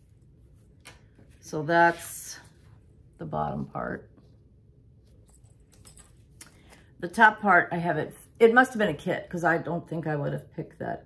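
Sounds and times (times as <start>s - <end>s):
faint handling clicks and rustles: 5.0s - 7.0s.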